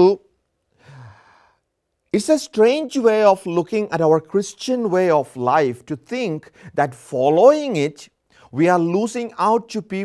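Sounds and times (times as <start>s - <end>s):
man speaking: 0.0s - 0.2s, 2.2s - 10.0s
faint breath exhale: 0.8s - 1.6s.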